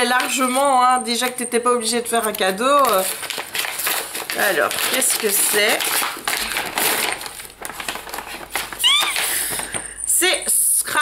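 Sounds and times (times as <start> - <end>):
wrapping paper rustling: 2.0 - 10.0
high-pitched vocal squeal: 8.8 - 9.3.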